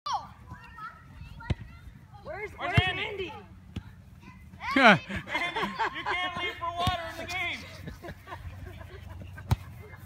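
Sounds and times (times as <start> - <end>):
soccer ball kick thud: 6.8 - 7.2, 9.4 - 9.8.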